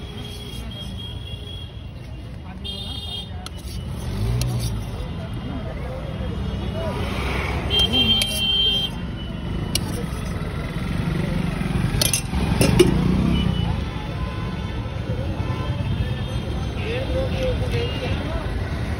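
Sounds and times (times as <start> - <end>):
vehicle engines in traffic: 0.0 - 18.9.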